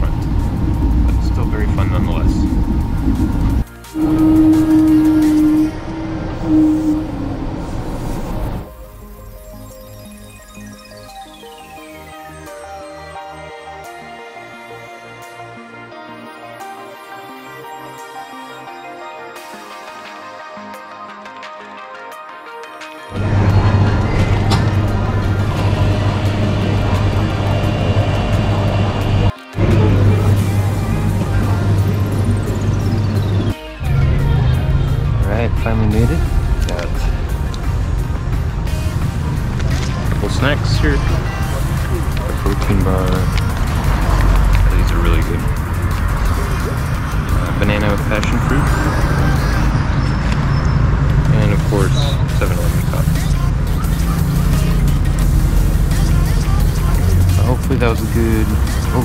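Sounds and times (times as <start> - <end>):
train carriage low rumble: 0.0 - 8.8, 23.2 - 49.8
droning hum: 0.0 - 9.0, 23.2 - 49.7
electronic music with heavy bass: 0.0 - 59.0.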